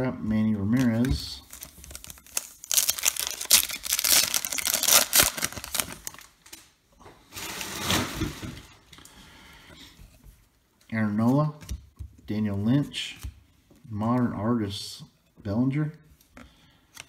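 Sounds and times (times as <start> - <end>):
plastic rustling: 0.7 - 6.6
plastic wrapper tearing and crinkling: 0.8 - 6.6.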